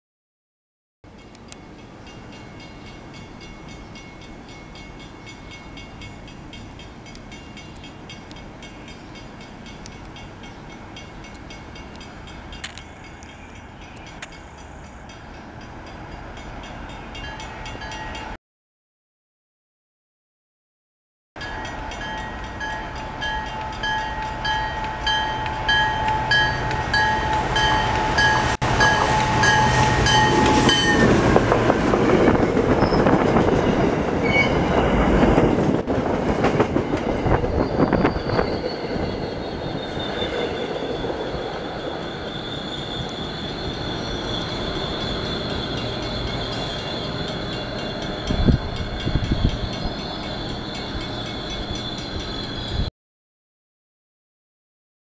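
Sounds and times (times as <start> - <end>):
train wheels rumbling on rails: 1.2 - 18.3, 21.4 - 52.9
high wheel squeal: 32.1 - 35.0, 36.8 - 52.9.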